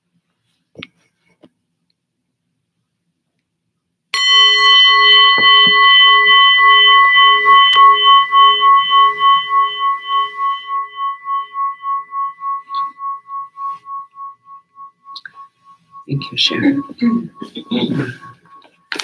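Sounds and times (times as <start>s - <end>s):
singing bowl ringing: 4.2s - 19.0s.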